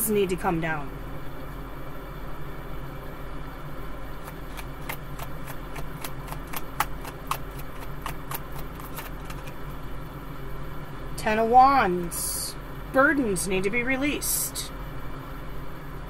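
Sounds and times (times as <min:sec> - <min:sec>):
steady low hum: 0:00.0 - 0:16.0
cards being shuffled: 0:04.2 - 0:09.6.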